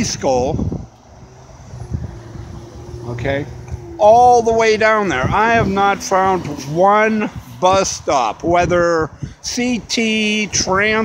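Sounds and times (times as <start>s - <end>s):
hum of passing cars: 0.0s - 11.0s.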